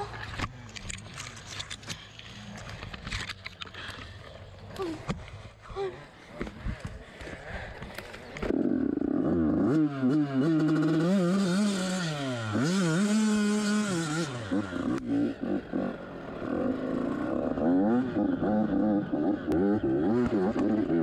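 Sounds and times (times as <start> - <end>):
dirt bike engine revving: 8.5 - 21.0.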